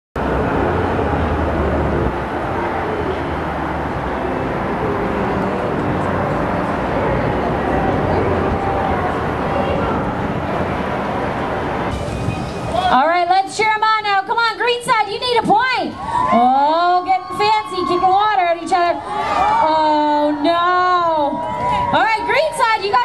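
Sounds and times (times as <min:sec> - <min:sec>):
distant traffic rumble: 0:00.2 - 0:23.0
faint indistinct voices: 0:04.1 - 0:13.0.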